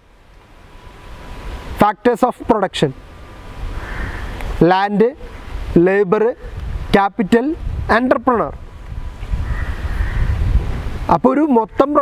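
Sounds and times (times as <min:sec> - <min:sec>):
faint drawn-out animal call: 0:03.8 - 0:04.4, 0:09.4 - 0:10.4
wind rumble on microphone: 0:05.4 - 0:12.0.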